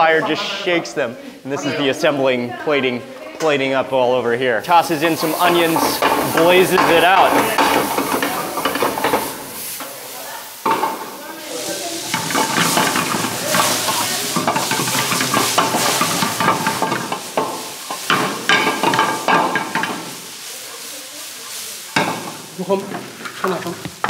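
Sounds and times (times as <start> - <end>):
vegetables sizzling in a pan: 4.6 - 24.0
utensil clacking in a pan: 4.7 - 24.0.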